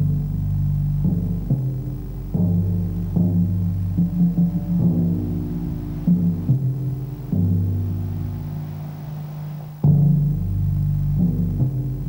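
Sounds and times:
tom-toms played with soft mallets: 0:00.0 - 0:12.0.

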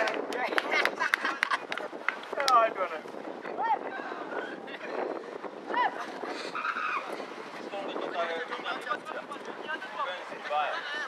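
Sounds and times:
voices shouting and calling: 0:02.2 - 0:11.0.

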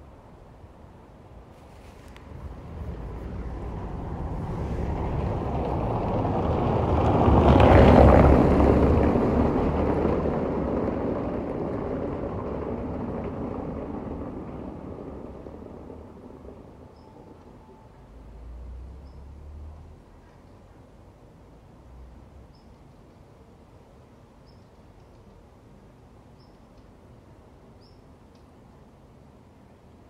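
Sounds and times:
motor vehicle passing by: 0:01.6 - 0:20.9.

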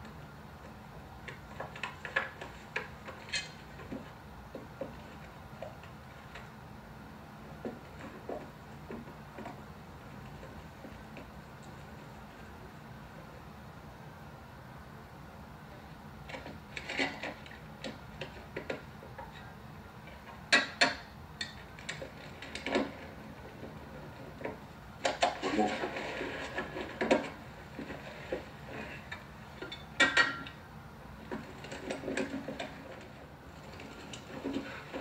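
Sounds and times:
wooden trolley clattering on rails: 0:21.9 - 0:30.6, 0:31.2 - 0:35.0.

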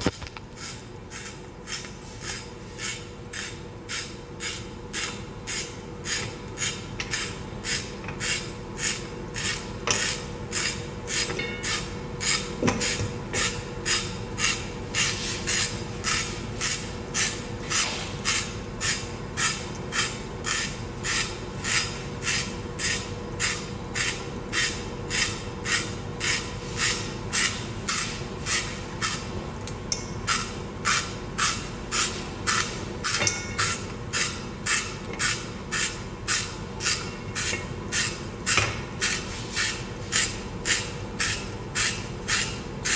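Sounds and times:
spiral slicer scraping carrot: 0:00.5 - 0:29.3, 0:30.3 - 0:42.9.

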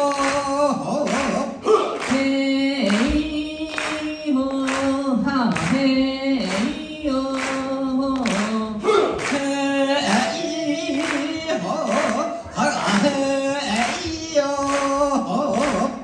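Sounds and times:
group chanting: 0:00.0 - 0:16.0.

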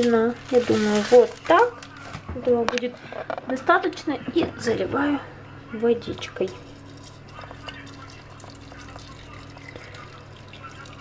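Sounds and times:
water pouring onto tea leaves: 0:06.8 - 0:11.0.

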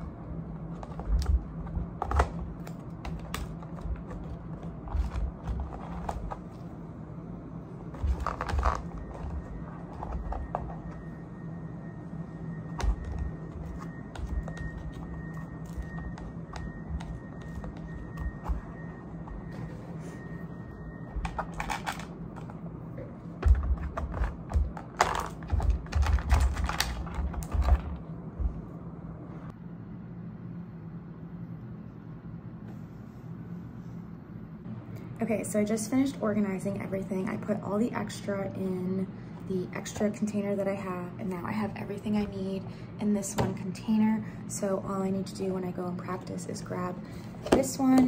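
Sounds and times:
steady low hum: 0:00.0 - 0:48.0.

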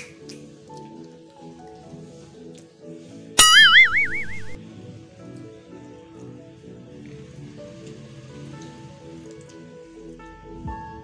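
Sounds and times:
background music: 0:00.0 - 0:11.0
cartoon boing: 0:03.4 - 0:04.6.

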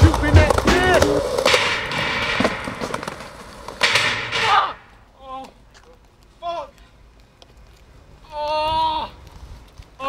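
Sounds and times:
skateboard clack: 0:00.0 - 0:05.0
skateboard wheels rolling on concrete: 0:00.0 - 0:10.0.

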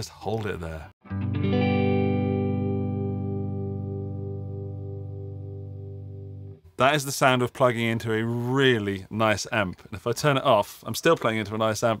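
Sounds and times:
overdriven electric guitar chord: 0:01.0 - 0:06.6.

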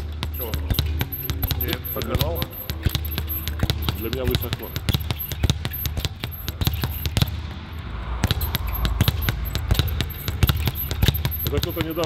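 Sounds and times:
speed bag being punched: 0:00.0 - 0:12.0.

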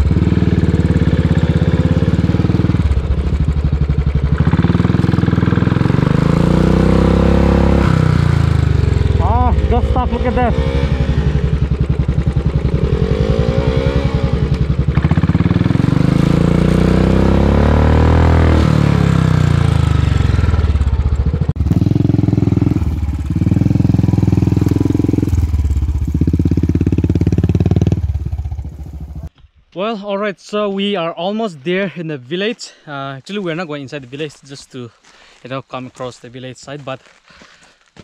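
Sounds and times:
motorcycle engine revving: 0:00.0 - 0:29.3.

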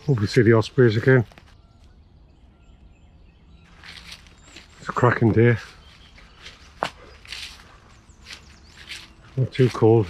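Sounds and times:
faint bird chirps: 0:00.0 - 0:10.0
footsteps on grass and leaves: 0:03.6 - 0:10.0.

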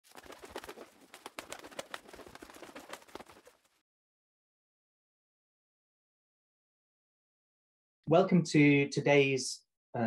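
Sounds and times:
fluttering wings: 0:00.0 - 0:03.8.

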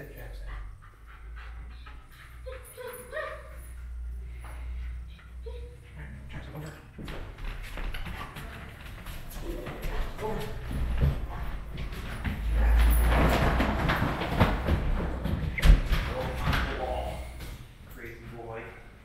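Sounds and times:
footsteps on wooden steps: 0:06.9 - 0:17.7
low rumbling and knocking: 0:09.5 - 0:17.7.

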